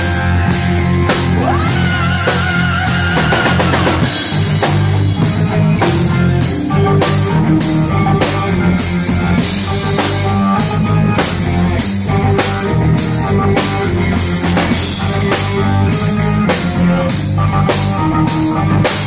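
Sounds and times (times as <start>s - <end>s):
bass guitar: 0.0s - 19.0s
drum kit beat: 0.0s - 19.0s
keyboards: 0.0s - 19.0s.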